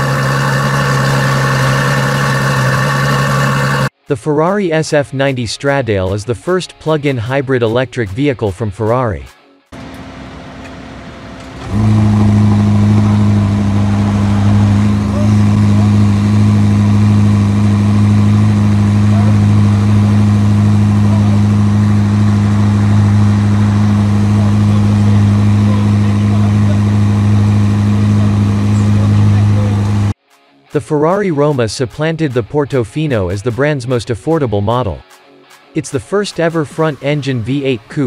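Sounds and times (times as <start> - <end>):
car engine starting and idling: 0.0 - 3.9, 9.8 - 30.2.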